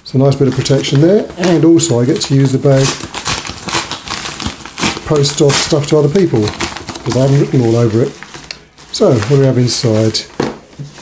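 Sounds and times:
padded mailer bag crinkling: 0.4s - 10.3s.

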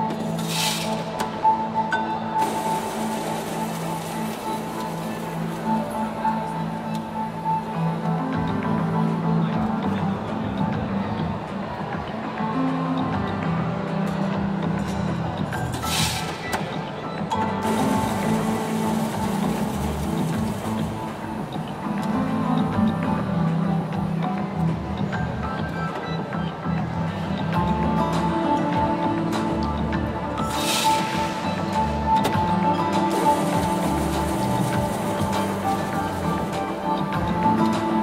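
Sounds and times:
background music: 0.0s - 38.0s.

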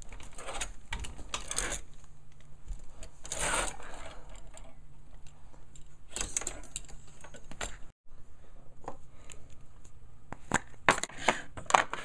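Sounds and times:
clothes hangers sliding on rail: 0.1s - 1.9s, 3.0s - 4.8s.

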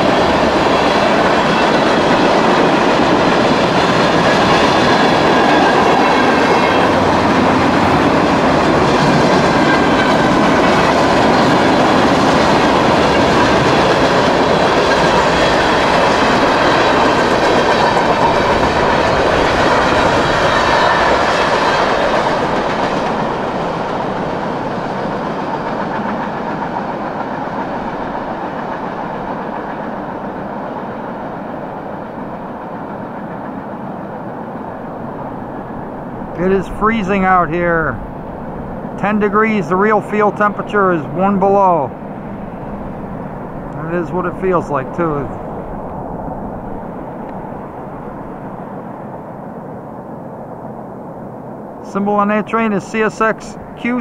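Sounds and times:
freight train rolling past: 0.0s - 54.0s
wheels rumbling on rail: 0.0s - 54.0s.

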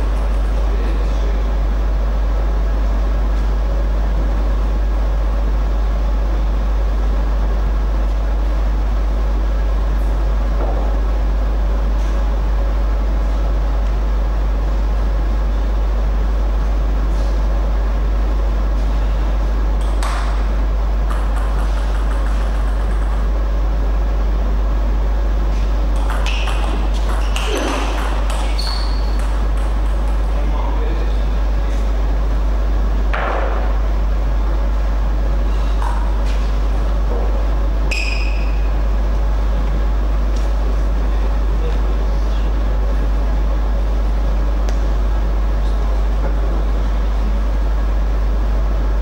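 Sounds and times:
loud steady low hum: 0.0s - 49.0s
short high squeak: 28.5s - 29.2s, 37.9s - 38.7s.

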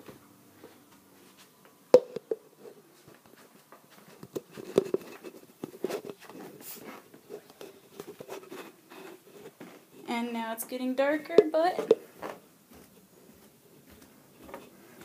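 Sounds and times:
plastic cup and phone handling: 4.2s - 9.6s, 11.4s - 12.0s.

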